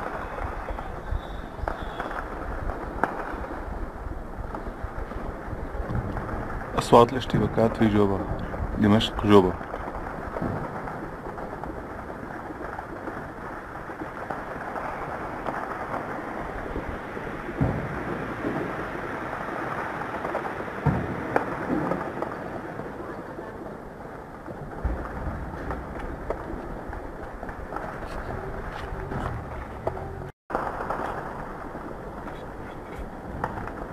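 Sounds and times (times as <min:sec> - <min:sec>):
distant explosions and gunfire thuds: 0:00.0 - 0:33.9
steady low rumble: 0:23.0 - 0:30.3.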